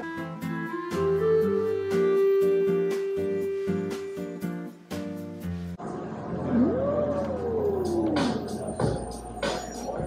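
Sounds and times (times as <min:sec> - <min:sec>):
restaurant room noise: 0:05.4 - 0:10.0.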